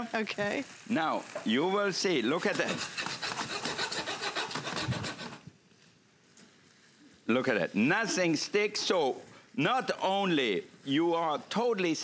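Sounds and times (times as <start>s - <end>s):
spatula scraping a wok: 2.2s - 5.5s.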